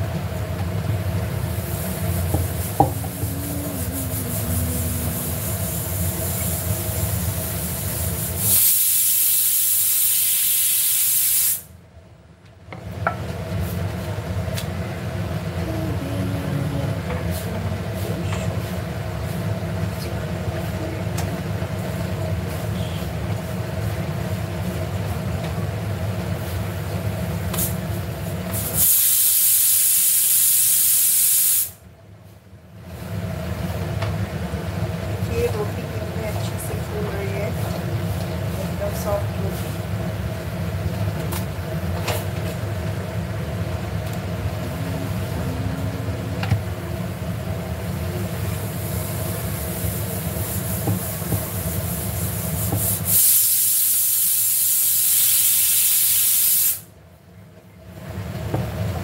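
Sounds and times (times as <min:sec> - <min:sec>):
gas burner rushing: 0:00.0 - 0:11.8, 0:12.7 - 0:31.8, 0:32.8 - 0:57.0
pressure cooker steam hissing: 0:01.2 - 0:11.7, 0:28.5 - 0:31.8, 0:47.9 - 0:56.9.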